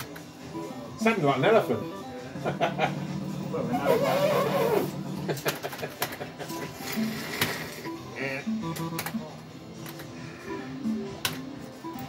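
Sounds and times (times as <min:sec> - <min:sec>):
fruit machine electronic bleeping tune: 0:07.9 - 0:09.3.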